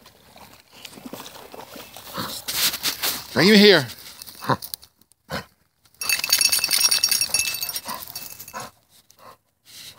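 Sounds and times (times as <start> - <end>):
metal tags jingling: 6.0 - 8.7.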